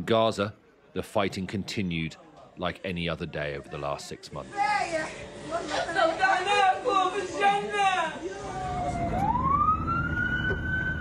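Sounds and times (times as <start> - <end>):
ambulance siren wailing: 8.4 - 11.0.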